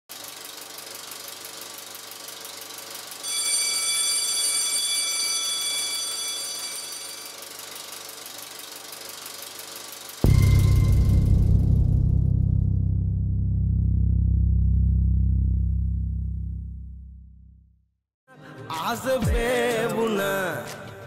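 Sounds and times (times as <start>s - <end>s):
film projector clicking: 0.1s - 3.2s, 6.9s - 10.2s
high ringing tone: 3.2s - 8.2s, 10.2s - 11.6s.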